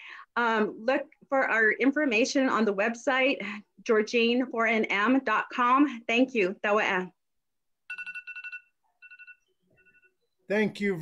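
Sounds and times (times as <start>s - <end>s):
electronic ringing tone: 7.9s - 10.5s.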